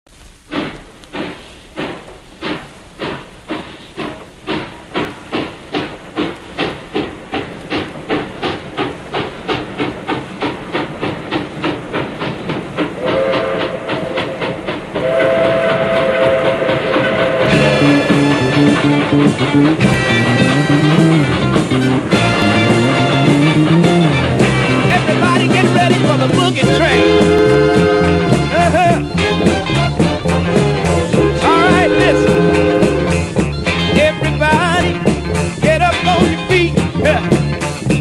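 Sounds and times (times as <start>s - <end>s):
steam locomotive exhaust chuffs: 0.1s - 38.0s.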